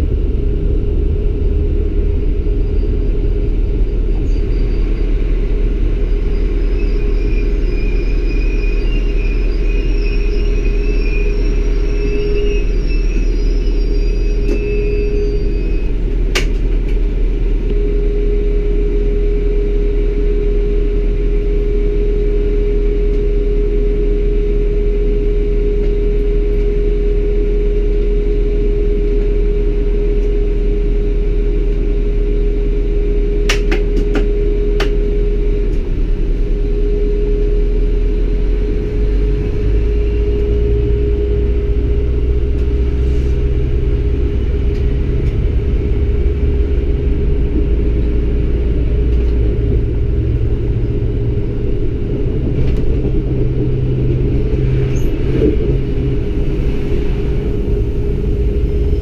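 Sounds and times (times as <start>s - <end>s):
faint high warbling whine: 0.0s - 16.1s, 17.5s - 59.0s
train engine rumble: 0.0s - 59.0s.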